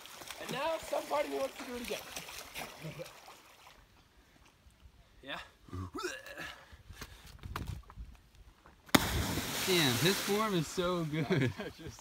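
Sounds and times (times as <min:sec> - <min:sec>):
body slapping into water: 0:08.9 - 0:10.5.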